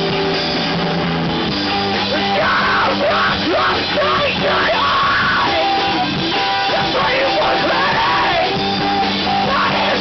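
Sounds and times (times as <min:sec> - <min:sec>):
drums: 0:00.0 - 0:10.0
electric guitars: 0:00.0 - 0:10.0
singer yelling into microphone: 0:02.1 - 0:10.0.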